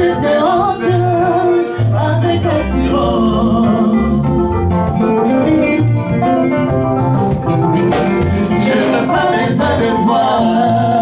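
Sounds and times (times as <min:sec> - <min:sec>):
drums: 0:00.0 - 0:11.0
electric bass: 0:00.0 - 0:11.0
guitar: 0:00.0 - 0:11.0
keyboard: 0:00.0 - 0:11.0
person singing: 0:08.1 - 0:11.0.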